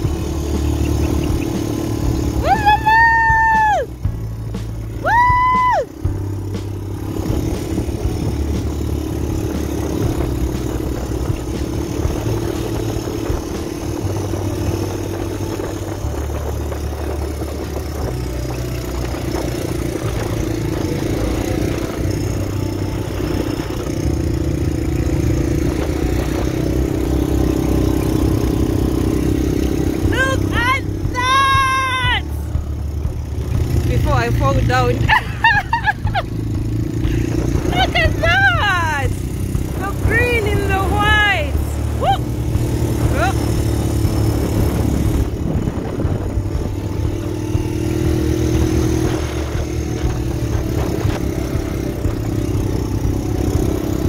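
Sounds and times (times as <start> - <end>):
quad bike engine running: 0.0 - 54.0.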